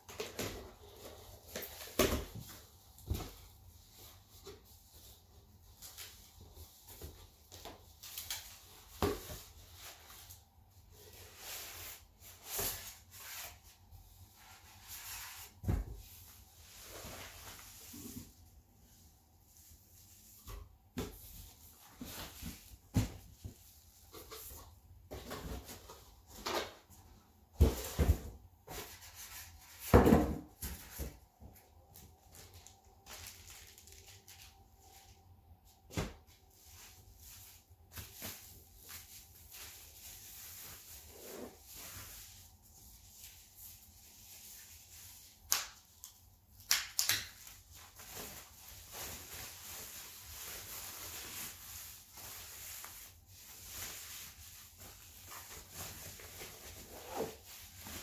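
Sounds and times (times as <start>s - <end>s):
cardboard and packing rustling: 0.0s - 46.0s, 47.3s - 58.0s.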